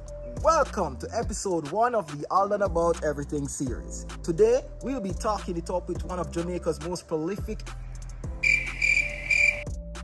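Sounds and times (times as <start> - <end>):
low background music: 0.0 - 10.0
insect chirping: 8.4 - 9.7.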